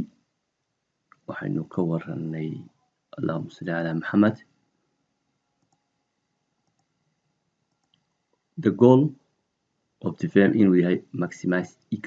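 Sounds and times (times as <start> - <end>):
computer mouse clicks: 5.6 - 5.9, 6.6 - 7.0, 7.7 - 8.2.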